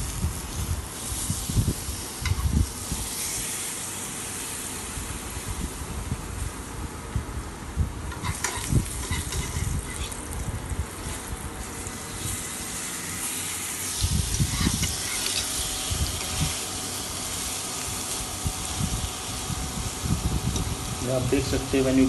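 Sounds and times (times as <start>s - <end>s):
food sizzling in a grill pan: 0.0s - 6.5s, 8.1s - 22.0s.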